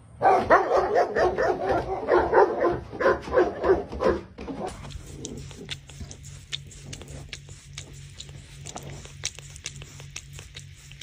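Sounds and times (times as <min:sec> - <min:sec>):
large dog barking: 0:00.2 - 0:04.7.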